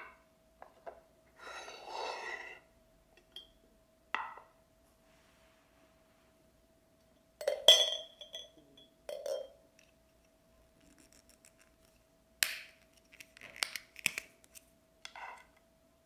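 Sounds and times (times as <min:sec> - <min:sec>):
teacup and teapot clinking: 0:03.2 - 0:03.6, 0:07.4 - 0:09.6.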